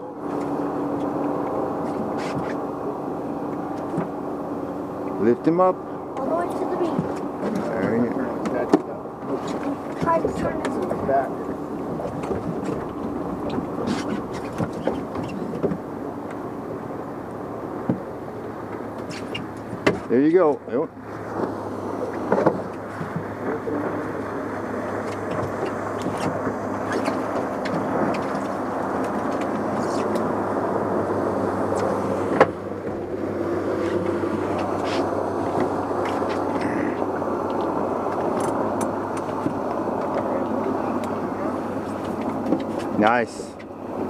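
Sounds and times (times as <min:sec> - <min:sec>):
outboard motor running: 0:00.0 - 0:44.0
water noise: 0:00.0 - 0:44.0.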